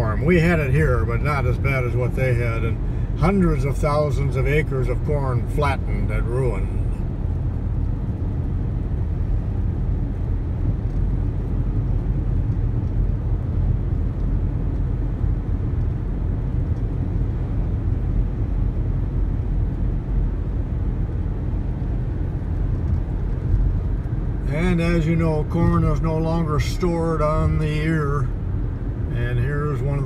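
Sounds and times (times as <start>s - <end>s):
road and engine noise in car: 0.0s - 30.0s.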